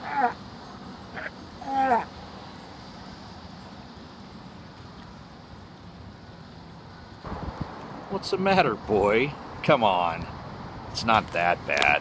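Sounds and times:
wind on microphone: 7.2 - 8.1.

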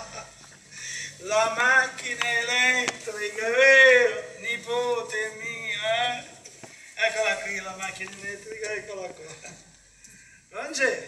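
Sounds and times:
man speaking: 1.1 - 9.6, 10.5 - 11.0.

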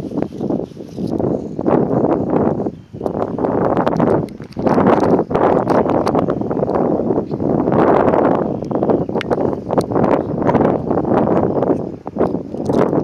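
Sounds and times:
wind buffeting microphone: 0.0 - 13.0
short crackles: 3.9 - 6.8.

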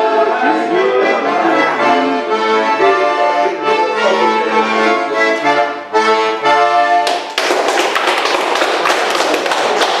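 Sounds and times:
people applauding: 7.0 - 10.0.

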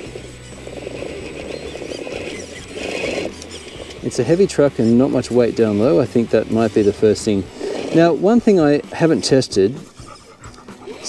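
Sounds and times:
tyres scrabbling on rock: 0.0 - 9.8
electric motor whirring under load: 0.0 - 11.0.

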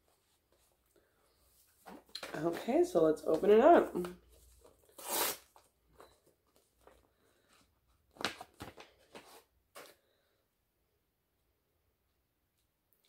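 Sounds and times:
sachet tearing open: 4.9 - 5.5.

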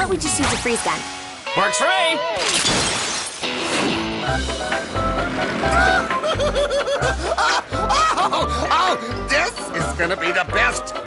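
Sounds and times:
shattering crash sound effect: 2.4 - 6.2
cartoon music with pulsing bass: 3.8 - 11.0
cartoon dog laughing: 5.8 - 8.8.

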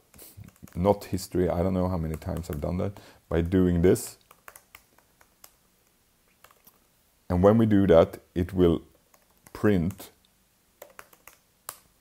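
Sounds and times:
laptop keyboard clicks: 2.1 - 2.6, 4.2 - 5.6, 10.8 - 11.9.

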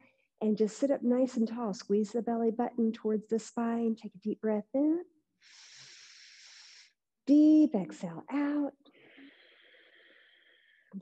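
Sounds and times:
woman breathing in deeply: 5.4 - 7.0, 8.9 - 10.9.

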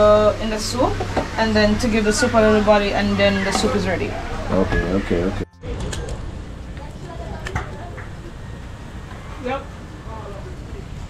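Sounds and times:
faint background voices: 1.0 - 11.0
steady low rumble: 3.9 - 11.0.

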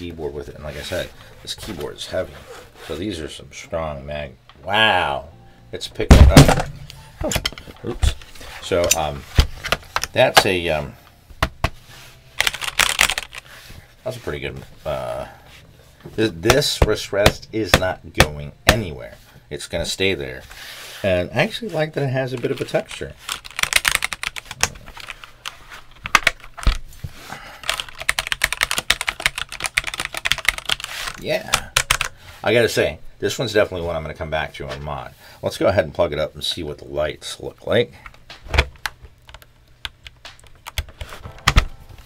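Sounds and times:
mechanical keyboard typing: 12.4 - 13.4, 22.9 - 25.3, 27.6 - 30.9, 31.5 - 32.1, 39.2 - 41.6.

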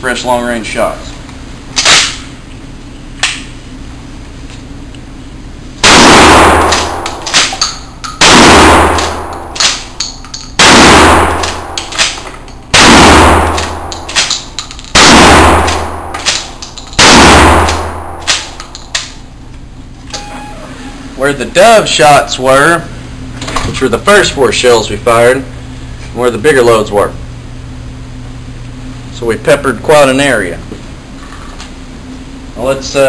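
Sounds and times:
shotgun blasts echoing indoors: 5.8 - 10.0, 10.6 - 19.2.

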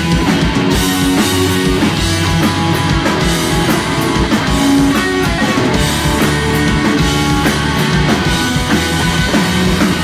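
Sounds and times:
driving drum-kit beat: 0.0 - 10.0
electric guitars strummed: 0.0 - 10.0.

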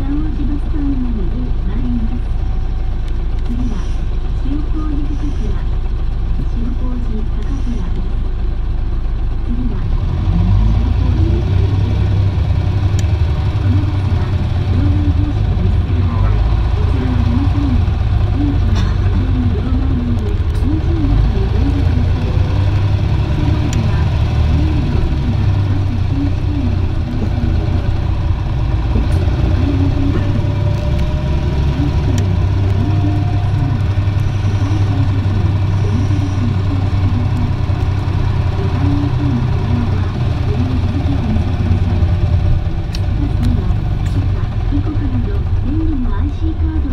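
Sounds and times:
people's voices: 0.0 - 2.5, 3.4 - 8.4, 9.4 - 46.9
bus diesel engine droning: 0.0 - 46.9
rattles: 1.5 - 46.9
faint whine: 10.7 - 46.9.

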